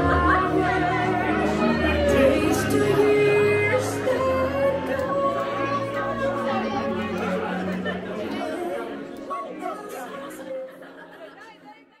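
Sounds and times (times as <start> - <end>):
crowd chattering: 0.0 - 12.0
music: 0.0 - 12.0.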